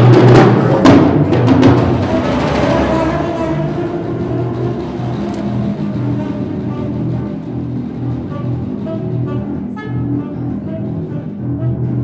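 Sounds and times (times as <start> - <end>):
improvised small ensemble music: 0.0 - 12.0
low held bass notes: 2.0 - 12.0.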